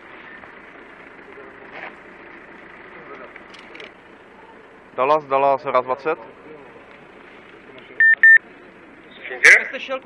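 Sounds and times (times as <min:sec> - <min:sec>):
radio beeps: 0:08.0 - 0:08.4.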